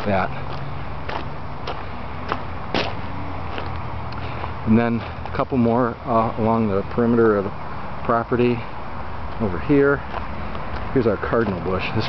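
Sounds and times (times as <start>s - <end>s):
soft footsteps: 0.0s - 5.4s, 9.3s - 11.7s.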